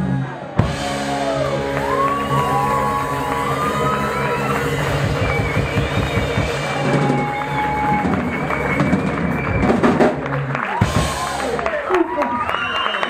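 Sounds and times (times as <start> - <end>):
electric guitars ringing out: 0.0 - 9.6
amplified band noise: 0.0 - 11.7
crowd noise: 0.0 - 13.0
drums: 0.0 - 13.0.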